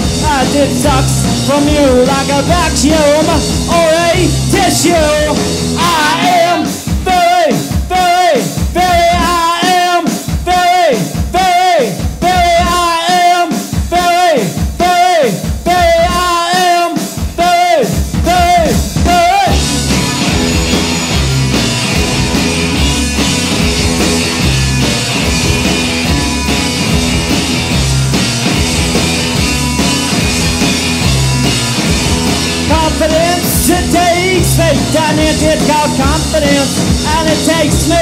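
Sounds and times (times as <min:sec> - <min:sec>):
rock band playing: 0:00.0 - 0:38.0.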